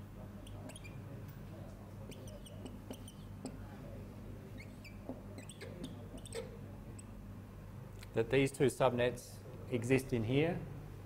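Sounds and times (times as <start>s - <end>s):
steady low hum: 0.0s - 11.0s
marker squeaking on board: 0.4s - 1.1s, 2.0s - 3.6s, 4.5s - 7.2s.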